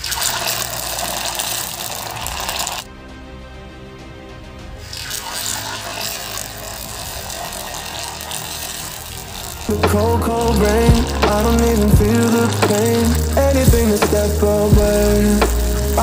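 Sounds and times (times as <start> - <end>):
oil sizzling: 0.0 - 2.8, 4.8 - 16.0
background music: 0.0 - 16.0.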